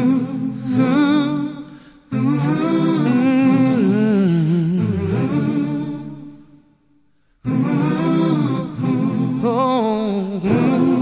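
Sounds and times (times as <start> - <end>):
man humming a melody: 2.1 - 6.3.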